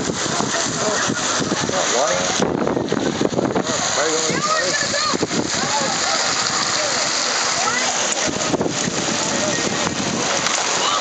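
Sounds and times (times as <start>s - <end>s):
people shouting and talking: 0.0s - 11.0s
water splashing into pool: 0.0s - 11.0s.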